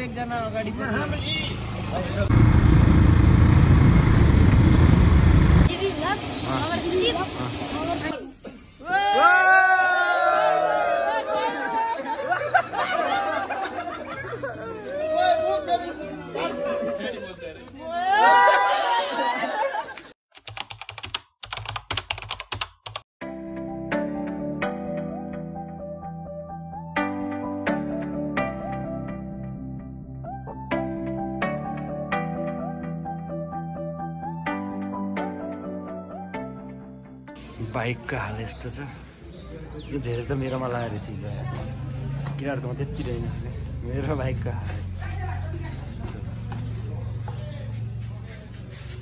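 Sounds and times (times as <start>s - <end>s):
loud low vehicle rumble: 1.2s - 8.1s, 40.9s - 49.0s
group of voices: 8.8s - 19.8s
men speaking: 14.4s - 18.0s, 42.3s - 44.9s.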